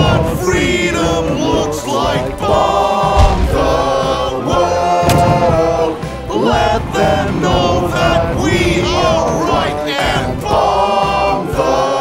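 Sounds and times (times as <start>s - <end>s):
backing music: 0.0s - 12.0s
choir singing pop song: 0.0s - 12.0s.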